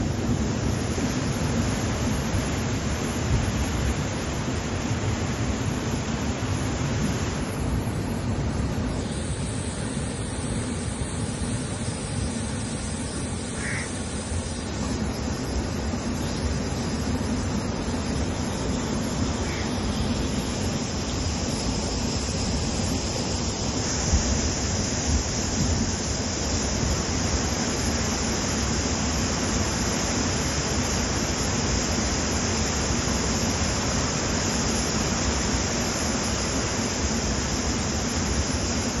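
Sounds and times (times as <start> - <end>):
river rushing over rapids: 0.0 - 39.0.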